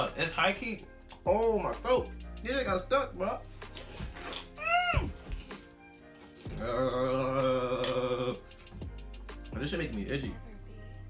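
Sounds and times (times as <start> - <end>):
background music: 0.0 - 11.0
person humming mm: 6.5 - 8.5.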